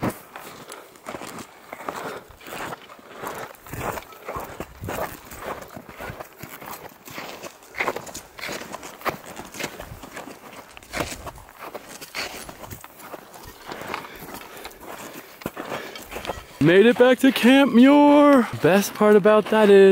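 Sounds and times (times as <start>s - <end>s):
footsteps crunching in snow: 0.0s - 19.9s.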